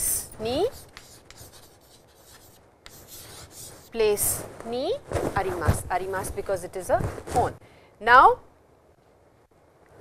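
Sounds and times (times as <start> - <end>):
chalk scratching on chalkboard: 0.5 - 4.3
chalk clicking against board: 0.8 - 3.8.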